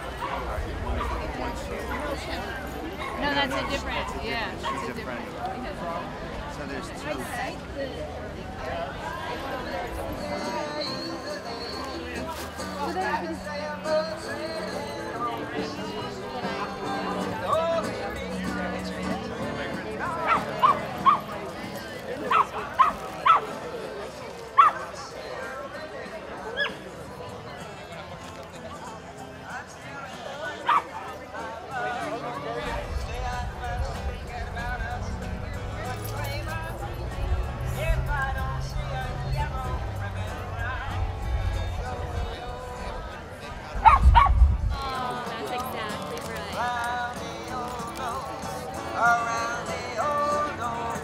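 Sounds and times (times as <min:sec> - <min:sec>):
background voices: 0:00.0 - 0:51.0
crowd chatter: 0:00.0 - 0:51.0
dog barking: 0:20.2 - 0:21.3, 0:22.3 - 0:23.5, 0:24.6 - 0:24.8, 0:30.7 - 0:30.9, 0:43.8 - 0:44.4.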